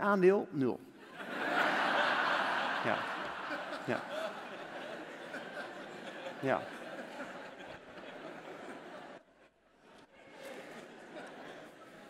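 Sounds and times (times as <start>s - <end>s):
audience chuckling and laughter: 1.0s - 12.0s.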